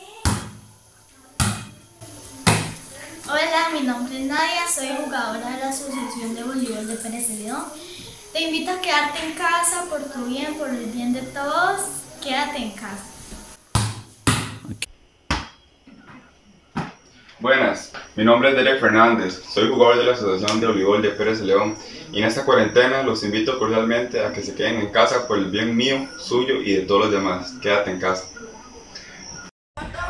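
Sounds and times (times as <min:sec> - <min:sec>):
volleyball hits: 0:00.2 - 0:00.8, 0:01.4 - 0:02.9, 0:13.7 - 0:15.6, 0:16.7 - 0:17.0.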